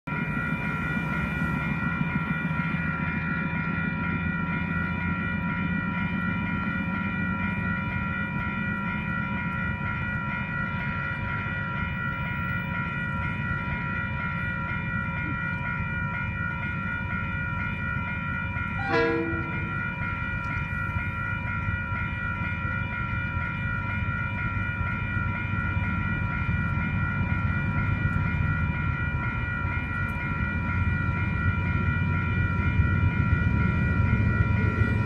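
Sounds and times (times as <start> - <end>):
diesel locomotive rumble: 0.1 - 35.0
level crossing warning bells: 0.1 - 35.0.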